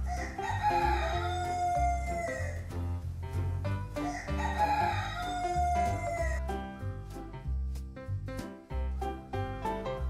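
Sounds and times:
rooster crowing: 0:00.1 - 0:02.6, 0:04.0 - 0:06.4.

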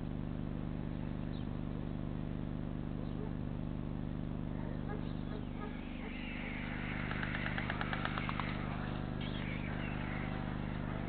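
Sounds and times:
low electrical hum: 0:00.0 - 0:11.0
stork bill clattering: 0:06.9 - 0:08.8.

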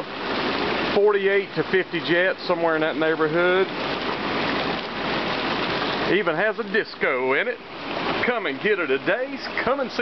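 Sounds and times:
hot tub water churning: 0:00.0 - 0:10.0.

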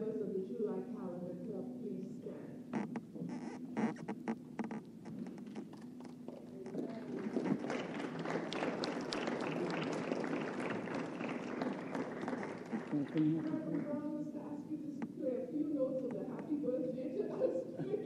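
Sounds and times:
congregation applauding: 0:06.5 - 0:14.0.

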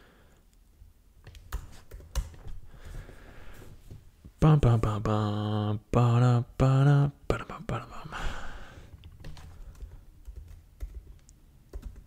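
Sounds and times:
computer keyboard typing: 0:01.3 - 0:02.6, 0:09.0 - 0:12.0
man's drawn-out vocal sound: 0:04.4 - 0:08.8.

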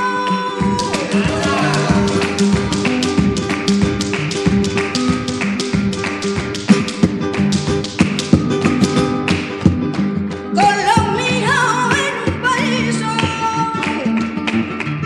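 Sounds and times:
flamenco guitar: 0:00.0 - 0:15.0
flamenco heel and toe taps: 0:00.1 - 0:15.0.

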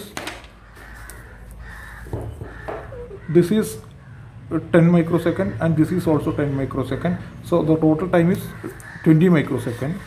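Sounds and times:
bird calling: 0:00.5 - 0:04.5, 0:05.2 - 0:10.0.

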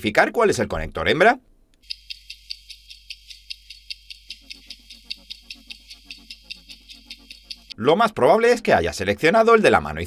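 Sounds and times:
faint steady tone: 0:01.7 - 0:07.8
high-pitched clock ticks: 0:01.8 - 0:07.8
low pulsing beat: 0:01.8 - 0:07.8.

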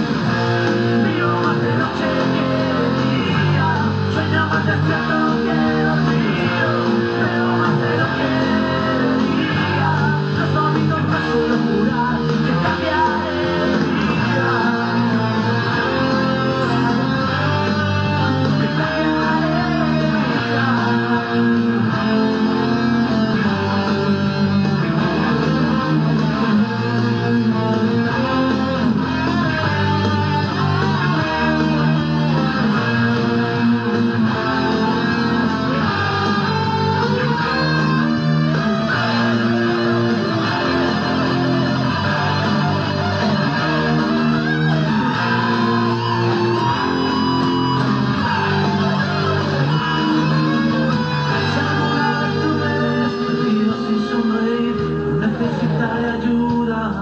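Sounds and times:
band backing: 0:00.0 - 0:57.0
bass line: 0:00.0 - 0:57.0
electric guitar lead lines: 0:00.0 - 0:57.0.

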